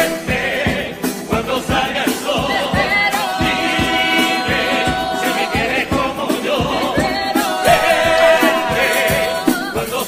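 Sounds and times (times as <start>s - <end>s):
chorus singing in harmony: 0.0s - 10.0s
steady beat: 0.0s - 10.0s.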